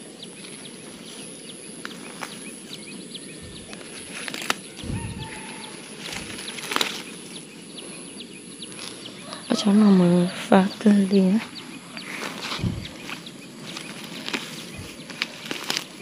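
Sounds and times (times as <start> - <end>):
small birds chirping: 0.0 - 16.0
sharp rustling clicks: 12.2 - 16.0.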